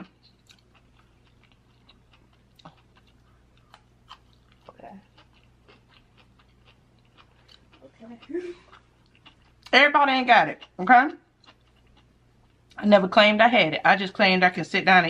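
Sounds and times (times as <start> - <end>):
chewing food: 0.0 - 12.8
faint hum: 0.0 - 15.0.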